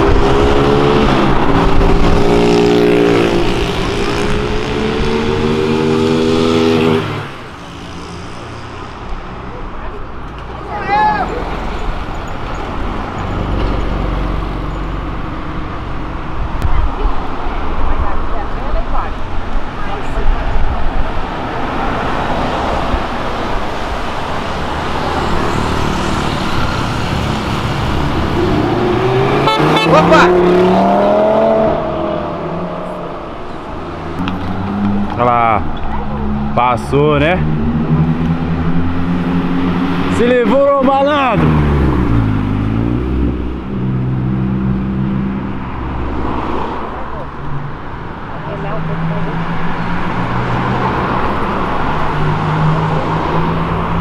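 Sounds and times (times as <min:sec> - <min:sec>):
car engine revving: 0:00.0 - 0:09.4, 0:19.2 - 0:54.0
traffic noise: 0:00.0 - 0:54.0.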